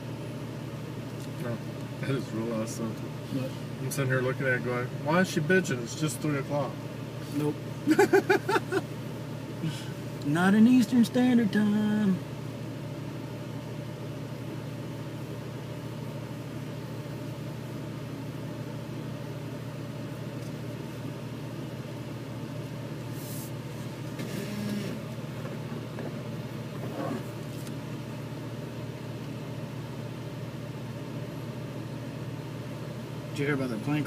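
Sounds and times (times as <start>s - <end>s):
vehicle engine low drone: 0.0s - 34.0s.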